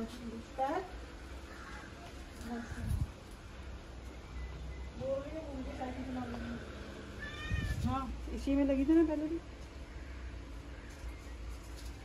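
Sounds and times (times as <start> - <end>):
cat meowing: 7.2 - 8.0.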